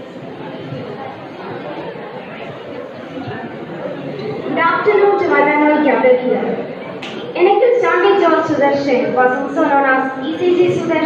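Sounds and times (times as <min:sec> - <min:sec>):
crowd chatting in a hall: 0:00.0 - 0:11.0.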